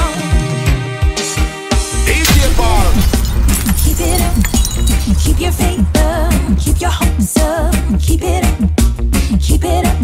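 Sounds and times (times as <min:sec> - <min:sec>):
drum and percussion hits: 0:02.1 - 0:08.6.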